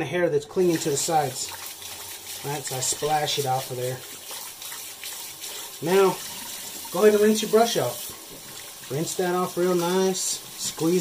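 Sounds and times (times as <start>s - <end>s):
water running from tap into sink: 0.6s - 11.0s.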